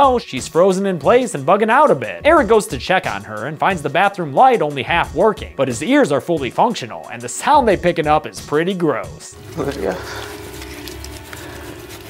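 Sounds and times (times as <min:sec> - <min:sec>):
wet sawing and scraping of flesh: 0:09.4 - 0:12.0.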